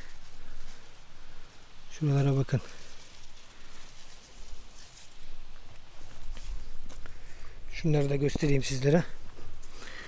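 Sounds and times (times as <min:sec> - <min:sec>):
footsteps through plants: 0:00.0 - 0:10.0
rustling through plants: 0:00.0 - 0:10.0
man speaking: 0:01.9 - 0:02.8, 0:07.7 - 0:09.2.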